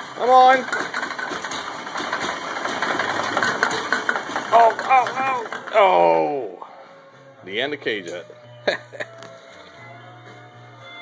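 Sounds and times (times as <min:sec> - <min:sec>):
car engine idling roughly: 0:00.0 - 0:05.8.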